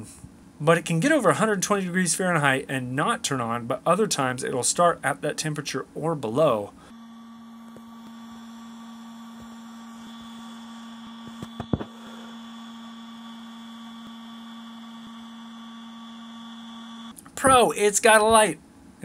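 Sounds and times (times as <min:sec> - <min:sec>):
cooling fan humming: 0:00.0 - 0:18.6.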